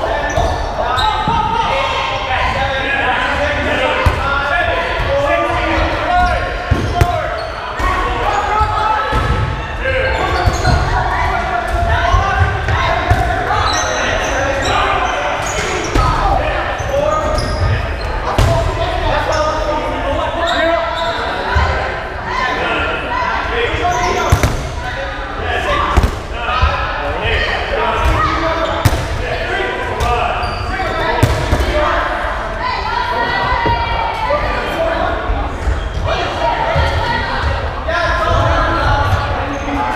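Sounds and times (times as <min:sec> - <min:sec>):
players shouting and chattering: 0:00.0 - 0:39.9.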